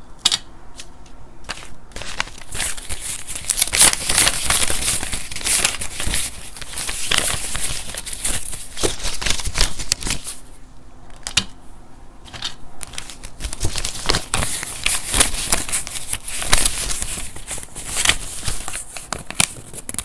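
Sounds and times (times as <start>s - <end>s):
banknotes crinkling and rustling: 1.4s - 10.5s, 12.3s - 20.0s.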